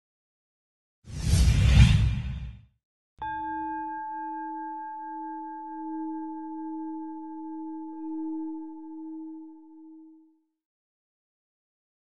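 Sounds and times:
struck bell-like metal tone: 3.2 - 10.2.

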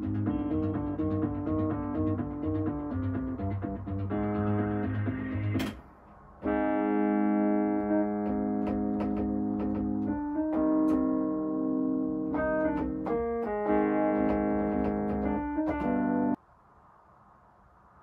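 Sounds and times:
electric piano chords: 0.0 - 5.8, 6.4 - 16.4.

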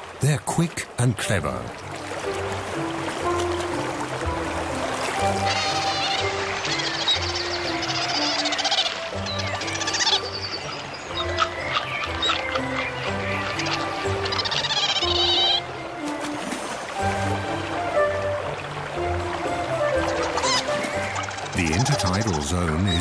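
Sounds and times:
background music with low notes: 0.0 - 23.0
otter high wavering calls: 5.2 - 15.7, 19.6 - 23.0.

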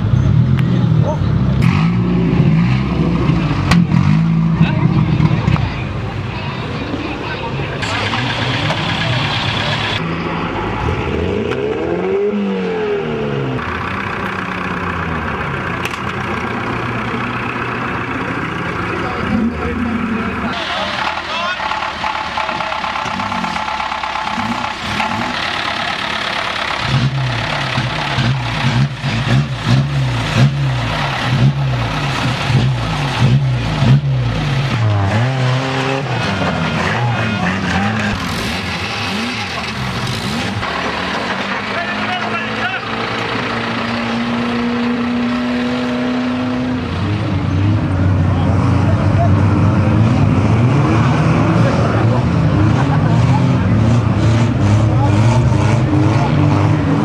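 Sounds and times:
car engines revving: 0.0 - 57.0.

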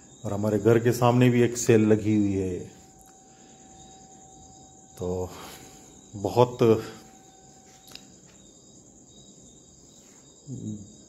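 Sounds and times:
steady high-pitched whine: 0.0 - 11.0.

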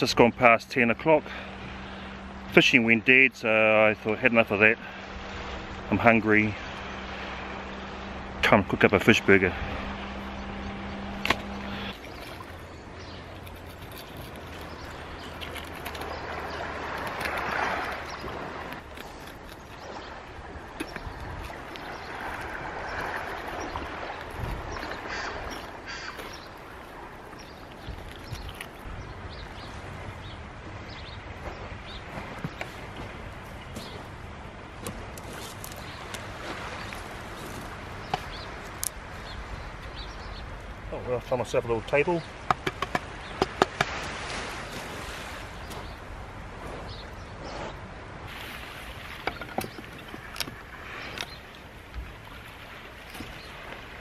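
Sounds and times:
surf washing on shore: 0.0 - 54.0
small knocks and clicks: 42.5 - 43.9.

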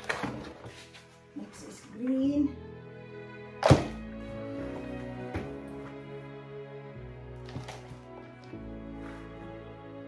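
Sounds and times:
soft background music: 0.0 - 10.0
plastic pot thunk on table: 3.6 - 4.1.

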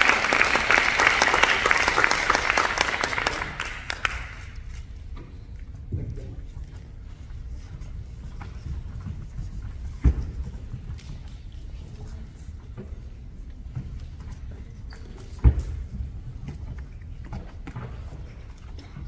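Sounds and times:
footsteps in a hall: 0.0 - 19.0.

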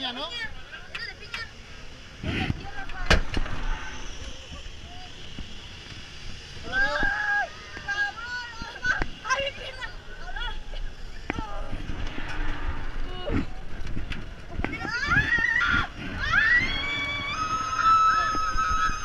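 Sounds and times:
passengers yelling and shrieking: 6.5 - 13.7, 14.4 - 19.0
wind noise on microphone: 11.3 - 19.0.

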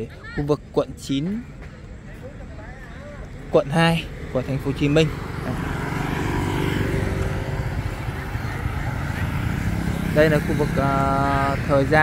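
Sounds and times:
motorbikes and scooters passing: 1.9 - 12.0.

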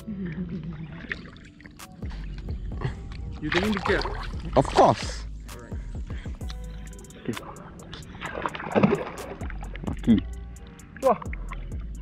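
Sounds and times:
fish thrashing and splashing water: 1.0 - 5.2, 7.9 - 9.8.

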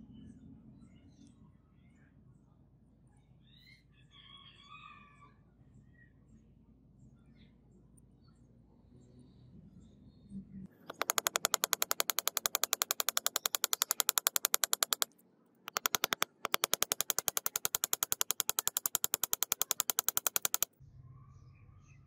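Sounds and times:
rapid mechanical clicking: 10.7 - 20.8.

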